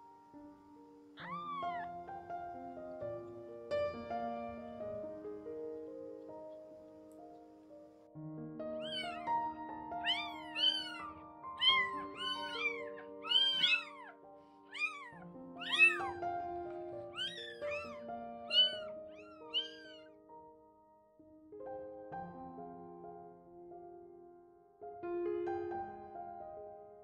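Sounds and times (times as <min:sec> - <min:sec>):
soft piano music: 0:00.0 - 0:27.0
kitten mewing: 0:01.2 - 0:02.1, 0:08.8 - 0:09.3, 0:10.0 - 0:20.1.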